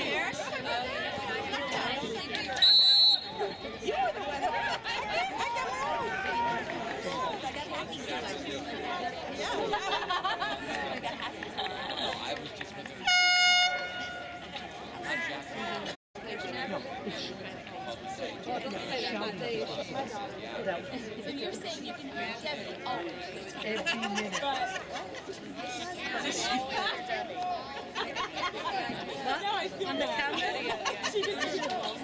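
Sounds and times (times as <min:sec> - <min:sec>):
spectators talking indistinctly: 0:00.0 - 0:32.0
loud horn blast with echo: 0:13.1 - 0:14.4.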